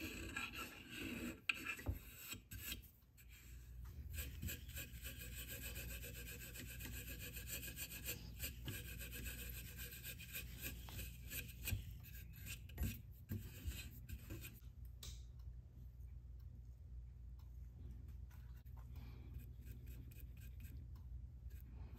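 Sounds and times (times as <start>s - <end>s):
steel wool rubbing on wood: 0.0s - 14.6s.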